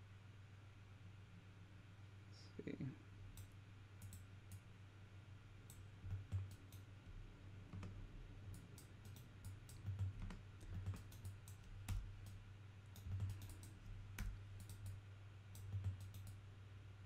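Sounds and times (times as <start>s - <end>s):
low steady hum: 0.0s - 17.0s
mouse and keyboard clicks: 3.3s - 4.6s, 5.7s - 6.9s, 7.7s - 12.4s, 13.0s - 16.4s.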